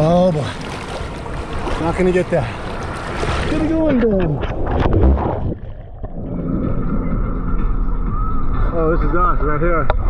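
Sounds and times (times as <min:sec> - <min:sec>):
surf noise: 0:00.0 - 0:07.9
muffled underwater churn: 0:00.0 - 0:08.1.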